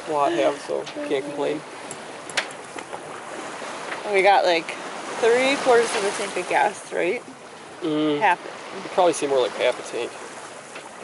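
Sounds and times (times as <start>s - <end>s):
water rushing past a boat: 0.0s - 11.0s.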